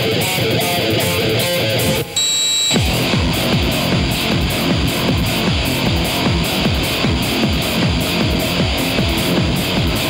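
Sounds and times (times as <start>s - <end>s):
guitar strumming: 0.0s - 10.0s
heavy electronic rock with deep bass: 0.0s - 10.0s
high steady tone: 2.0s - 3.0s.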